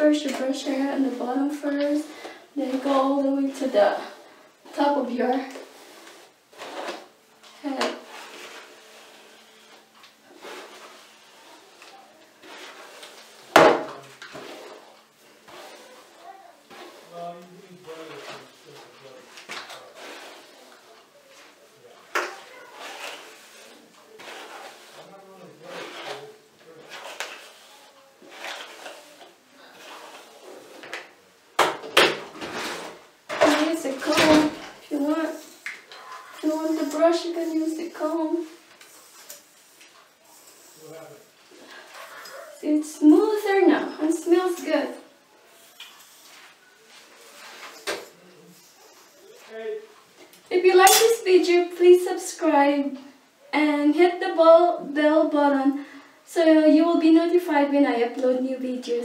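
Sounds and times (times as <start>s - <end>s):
hairbrush brushing hair: 5.5s - 21.6s, 22.2s - 31.0s, 32.7s - 49.8s.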